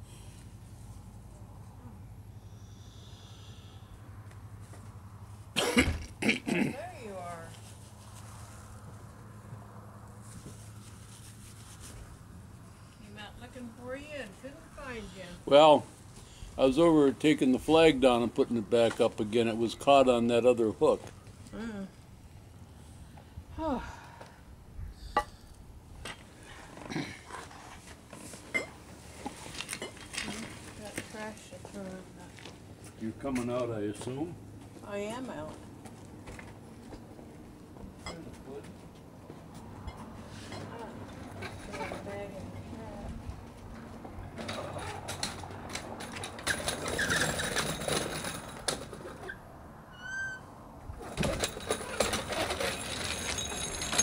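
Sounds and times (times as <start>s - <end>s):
person coughing: 5.6s - 6.8s.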